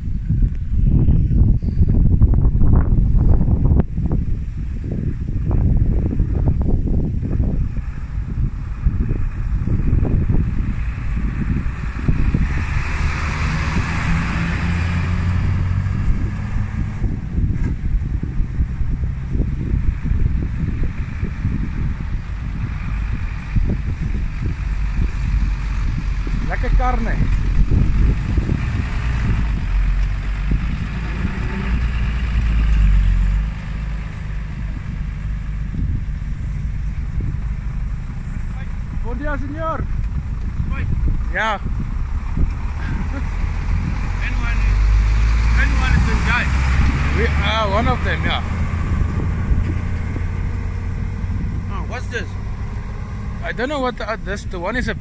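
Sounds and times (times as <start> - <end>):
vehicle engine hum: 0.0 - 55.0
wind buffeting microphone: 0.0 - 55.0.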